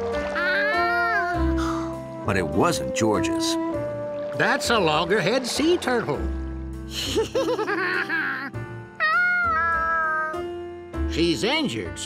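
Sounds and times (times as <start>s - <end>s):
light background music: 0.0s - 12.0s
cartoon monkey laughing: 7.0s - 10.4s.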